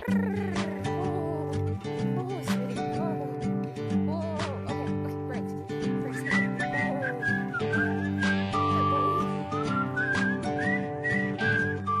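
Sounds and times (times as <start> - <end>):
instrumental chords: 0.0 - 12.0
whistled melody: 5.7 - 12.0.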